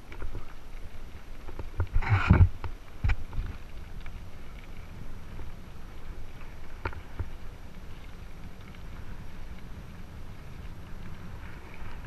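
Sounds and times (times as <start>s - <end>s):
bike clicks and rattles: 0.0s - 12.0s
bike tyres rolling on gravel: 0.0s - 12.0s
wind on microphone: 0.0s - 12.0s.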